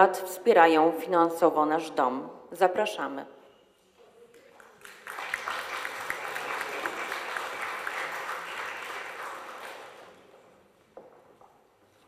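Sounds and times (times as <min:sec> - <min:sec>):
audience applauding: 0:04.4 - 0:10.5.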